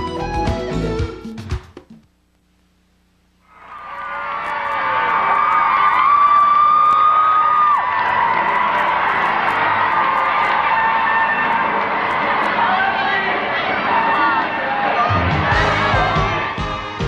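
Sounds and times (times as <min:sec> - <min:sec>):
long high scream: 0:03.5 - 0:12.9
crowd cheering and screaming: 0:03.5 - 0:17.0.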